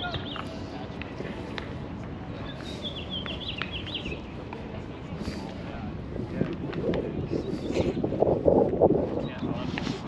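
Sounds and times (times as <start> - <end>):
people talking: 4.0 - 8.1, 9.1 - 10.0.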